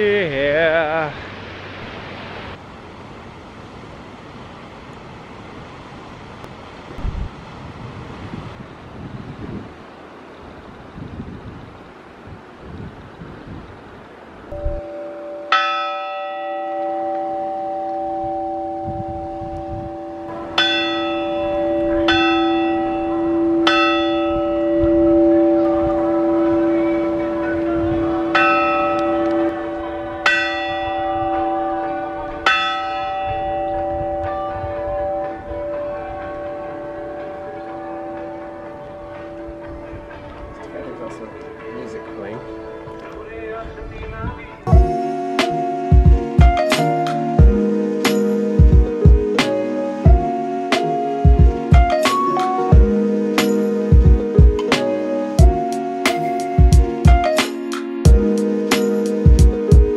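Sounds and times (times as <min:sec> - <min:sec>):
wind noise on microphone: 0:05.4 - 0:57.4.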